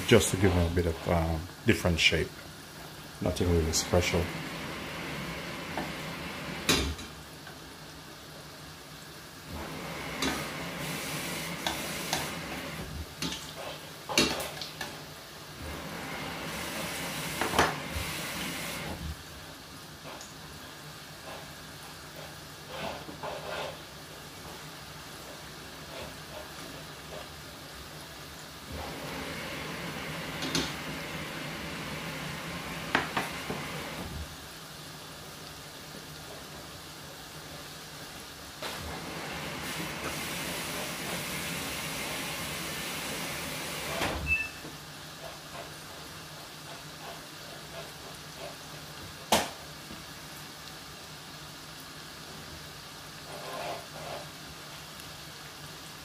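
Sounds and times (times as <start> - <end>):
oil sizzling while deep-frying: 0.0 - 56.0.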